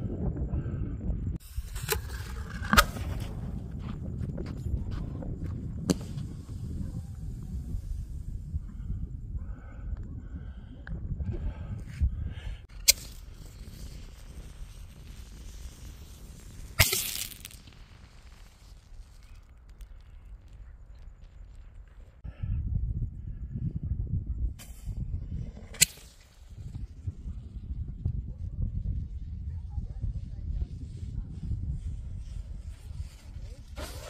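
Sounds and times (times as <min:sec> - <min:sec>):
firework hiss: 0:05.8 - 0:08.5, 0:12.6 - 0:22.2, 0:25.6 - 0:27.2
firework bangs: 0:12.7 - 0:22.0.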